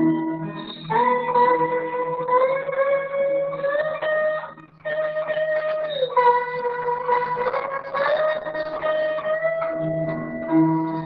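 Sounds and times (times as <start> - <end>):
slide guitar melody: 0.0 - 11.0.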